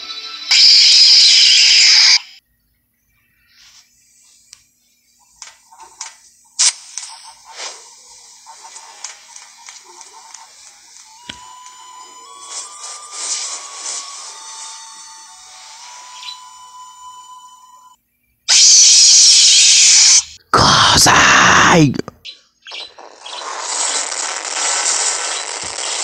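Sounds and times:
loud harsh static noise: 0:06.6 - 0:17.3, 0:18.5 - 0:22.1, 0:23.0 - 0:26.0.

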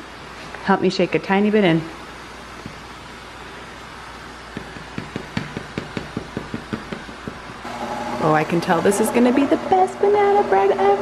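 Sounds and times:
light regular knocking: 0:04.5 - 0:07.7
stand mixer motor hum: 0:07.6 - 0:09.7.

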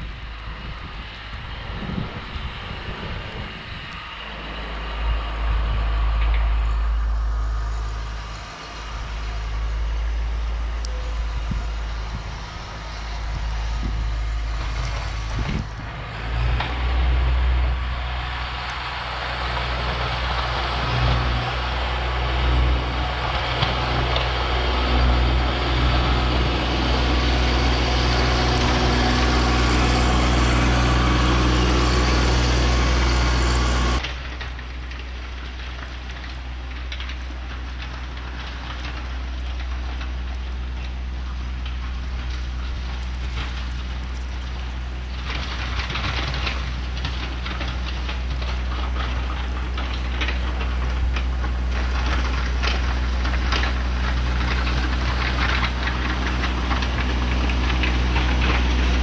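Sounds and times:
plow blade scraping snow: 0:00.0 - 0:59.0
tractor diesel engine under load: 0:00.0 - 0:59.0.

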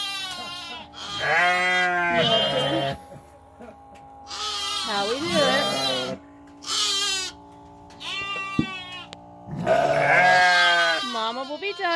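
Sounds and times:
lambs bleating: 0:00.0 - 0:03.1, 0:04.2 - 0:11.9.

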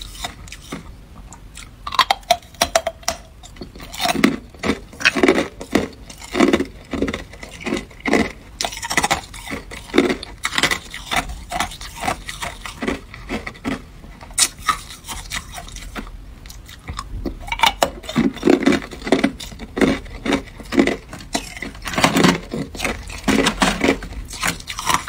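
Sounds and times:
ice being chewed: 0:00.0 - 0:25.0.

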